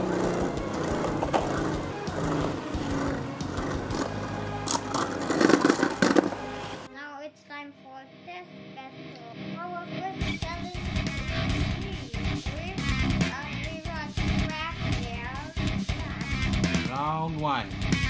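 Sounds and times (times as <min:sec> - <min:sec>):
spinning top whirring scrape: 0:00.0 - 0:06.9
background music: 0:00.0 - 0:18.0.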